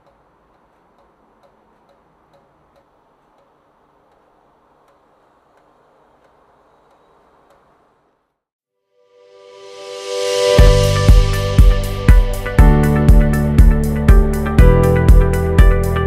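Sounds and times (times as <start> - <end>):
light sharp ticks: 0.0 - 7.6.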